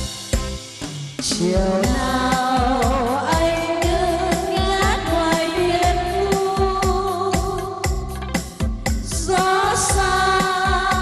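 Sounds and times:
steady drum beat: 0.0s - 11.0s
group singing slow song: 9.0s - 11.0s.

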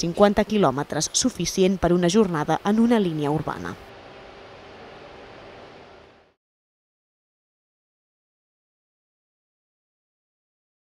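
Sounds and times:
hall background noise with hum: 0.0s - 6.4s.

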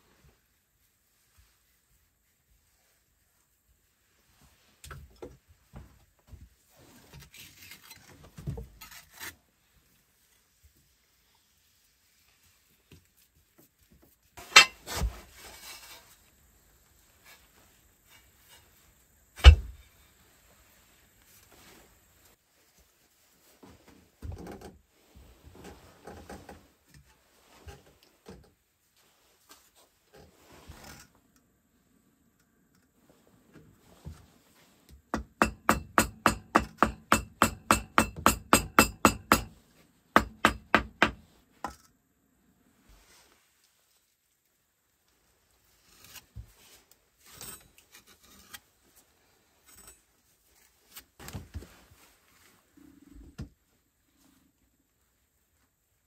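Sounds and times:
hammer tapping brick: 35.2s - 39.5s, 40.2s - 41.2s
soft scraping: 42.8s - 44.2s.

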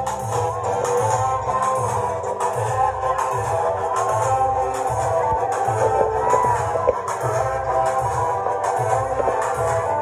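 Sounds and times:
loud dance music through speakers: 0.0s - 10.0s
steady bass beat: 0.0s - 10.0s.

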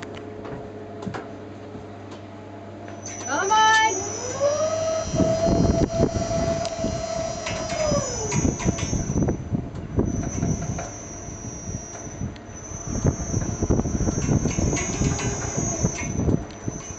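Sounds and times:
motor whine: 2.6s - 16.9s
thin high whine: 2.8s - 16.9s.

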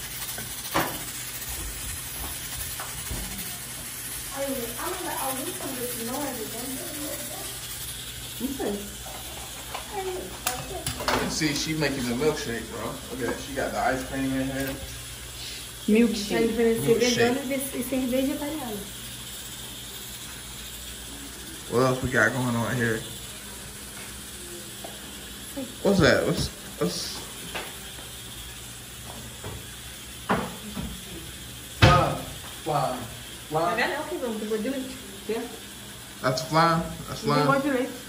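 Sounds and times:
man speaking: 11.3s - 14.9s.

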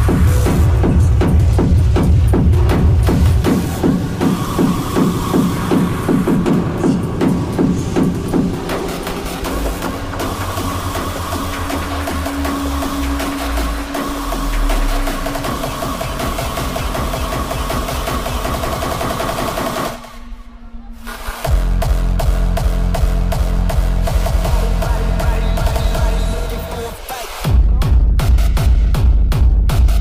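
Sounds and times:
techno kick-drum pulse: 0.0s - 20.2s, 21.4s - 30.0s.

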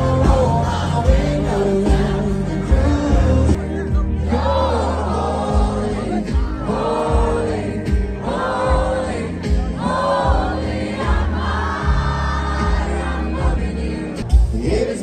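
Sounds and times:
crowd: 0.0s - 15.0s
live country band playing: 0.0s - 15.0s
steady bass: 0.0s - 15.0s.

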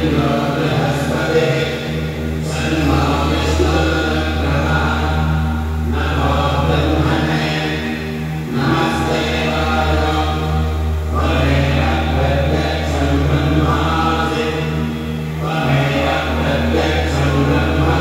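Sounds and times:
mantra chanting: 0.0s - 18.0s
steady low hum: 0.0s - 18.0s.

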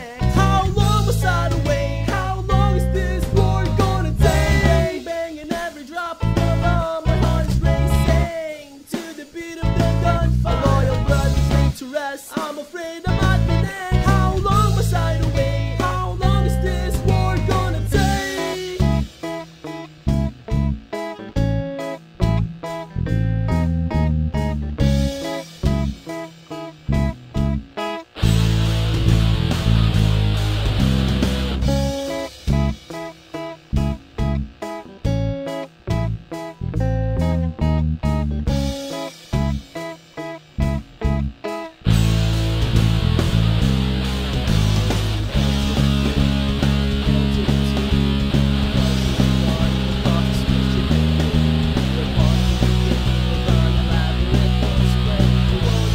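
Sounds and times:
rock band playing instrumental: 0.0s - 55.9s.

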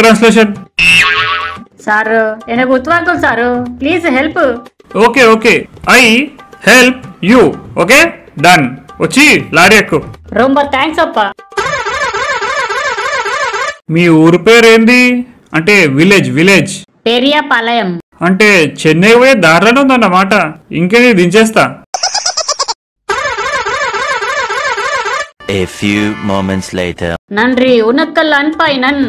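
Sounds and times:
cartoon falling-note sound effect: 0.8s - 1.6s, 11.5s - 13.8s, 23.1s - 26.2s
person speaking: 25.4s - 27.2s.

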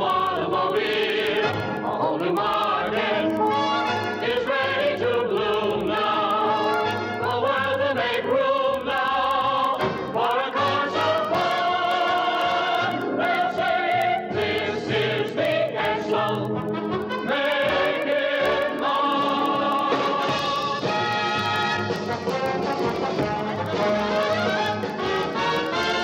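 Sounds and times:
choir with orchestra: 0.0s - 26.0s.

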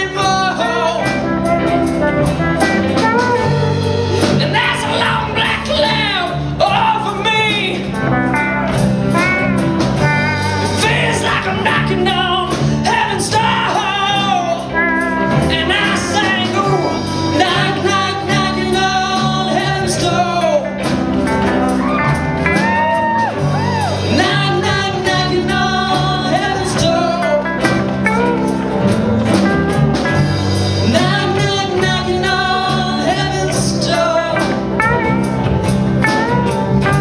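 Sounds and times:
person singing: 0.0s - 2.0s, 3.0s - 8.0s, 10.5s - 21.0s, 21.7s - 28.9s, 30.8s - 37.0s
drum kit: 0.0s - 37.0s
electric bass: 0.0s - 37.0s
electric guitars: 0.0s - 37.0s.

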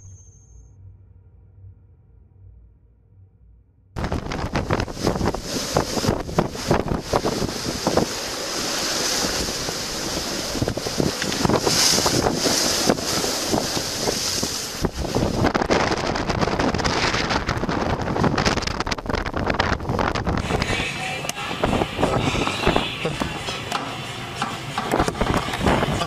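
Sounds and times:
wind buffeting microphone: 4.0s - 23.5s, 24.6s - 26.0s
heavy surf rushing: 4.0s - 26.0s.

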